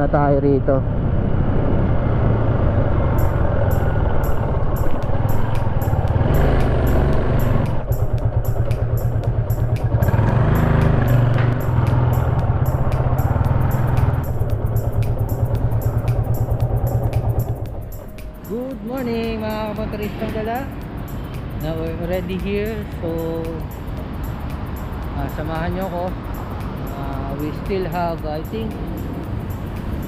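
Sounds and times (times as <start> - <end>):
road and wind rush: 0.0 - 30.0
motorcycle engine running: 1.4 - 30.0
background music with steady beat: 3.1 - 30.0.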